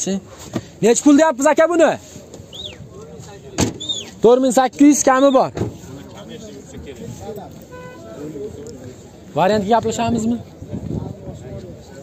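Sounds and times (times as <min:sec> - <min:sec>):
faint background voices: 0:04.9 - 0:12.0.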